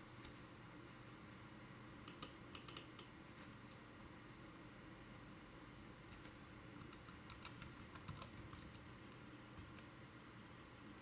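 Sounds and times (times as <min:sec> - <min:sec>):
computer keyboard keystrokes: 0:02.0 - 0:03.1, 0:06.1 - 0:09.9.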